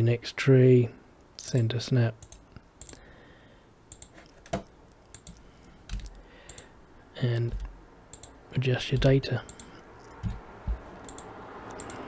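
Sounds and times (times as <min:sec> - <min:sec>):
mouse and keyboard clicks: 0:03.9 - 0:06.7, 0:09.0 - 0:12.0.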